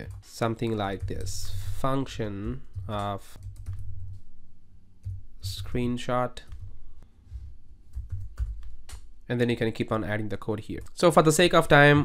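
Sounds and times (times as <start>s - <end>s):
computer keyboard typing: 0.0s - 4.3s, 7.9s - 9.1s.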